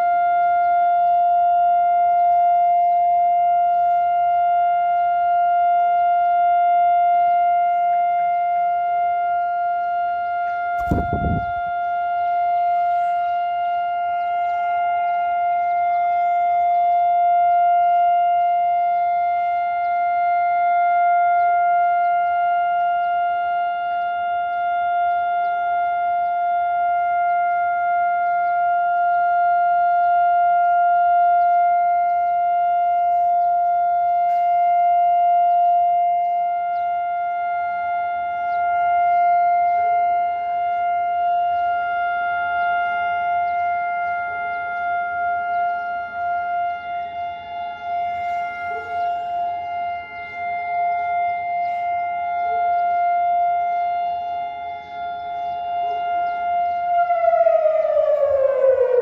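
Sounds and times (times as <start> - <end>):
long steady siren tone: 0.0 - 59.0.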